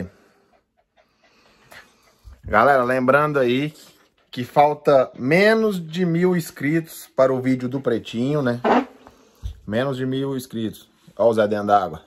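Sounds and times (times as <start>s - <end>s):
small dog panting: 0.0s - 4.9s.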